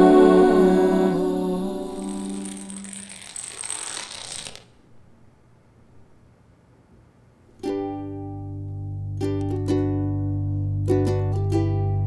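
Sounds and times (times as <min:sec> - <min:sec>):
dominoes toppling on concrete: 0:02.2 - 0:04.8.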